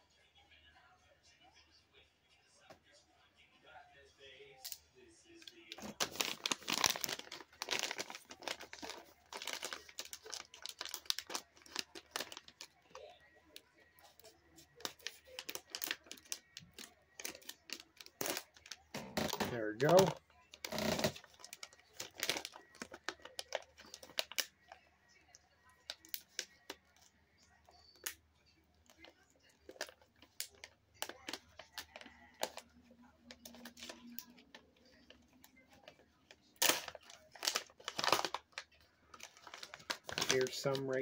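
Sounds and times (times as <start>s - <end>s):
plastic packaging crinkling: 5.5s - 24.8s, 33.3s - 41.0s
plastic bag rustling: 5.7s - 13.1s, 14.2s - 24.4s, 36.6s - 41.0s.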